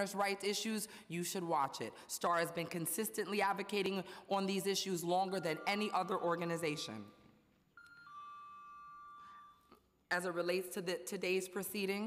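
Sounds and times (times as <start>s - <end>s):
electronic ding-dong chime: 7.8s - 9.7s.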